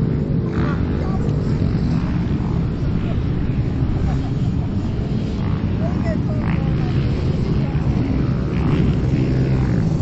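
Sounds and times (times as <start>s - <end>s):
dirt bike engines droning: 0.0s - 10.0s.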